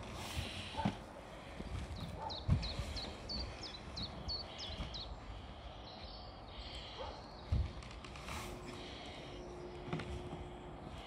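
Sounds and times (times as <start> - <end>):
small bird chirping: 2.0 - 5.2.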